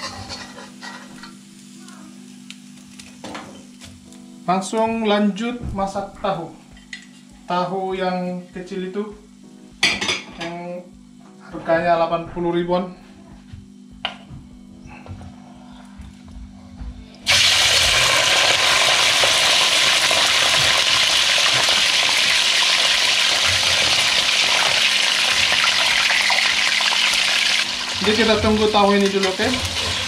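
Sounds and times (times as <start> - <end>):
faint hum: 10.5 - 20.4
tofu sizzling in hot oil: 17.3 - 30.0.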